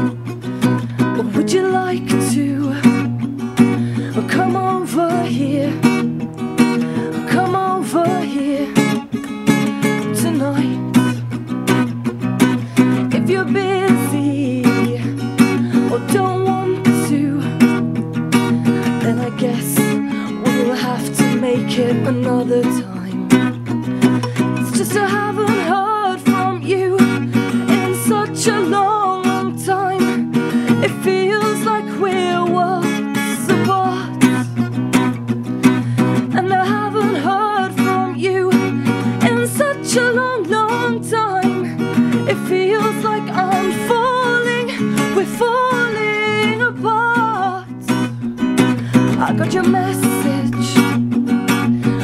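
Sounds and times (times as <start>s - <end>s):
acoustic guitar strumming: 0.0s - 52.0s
woman singing: 0.0s - 52.0s.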